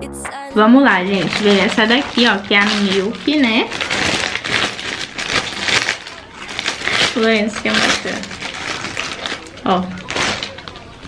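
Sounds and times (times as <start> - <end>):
cellophane crinkling: 0.7 - 11.0.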